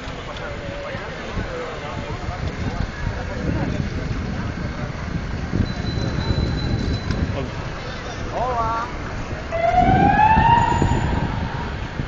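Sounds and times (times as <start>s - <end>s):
siren wailing: 9.5s - 11.8s.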